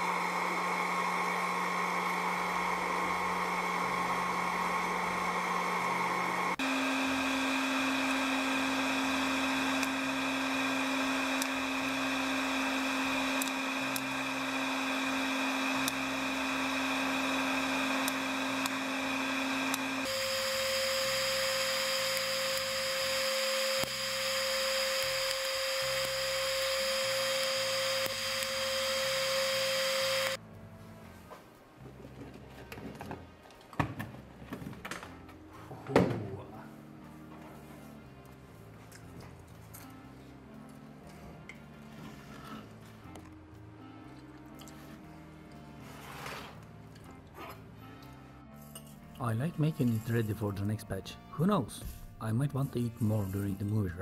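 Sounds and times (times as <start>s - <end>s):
popcorn maker blowing hot air: 0.0s - 30.4s.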